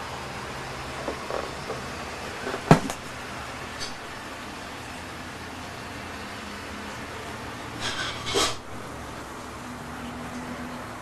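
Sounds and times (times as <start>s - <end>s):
short scraping rasps: 7.8s - 8.7s.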